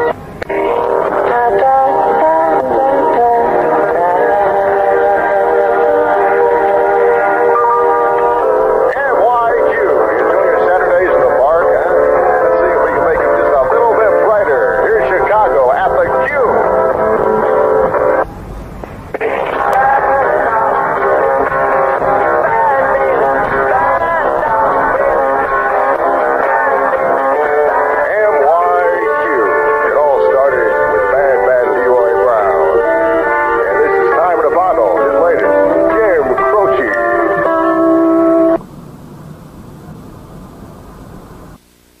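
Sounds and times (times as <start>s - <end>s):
song playing on car radio: 0.0s - 18.2s, 18.8s - 38.6s.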